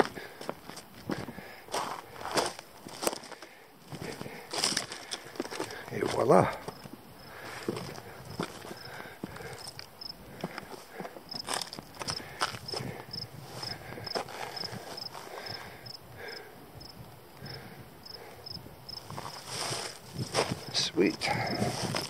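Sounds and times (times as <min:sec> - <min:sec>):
footsteps on rock and grass: 0:00.0 - 0:15.8, 0:19.0 - 0:22.0.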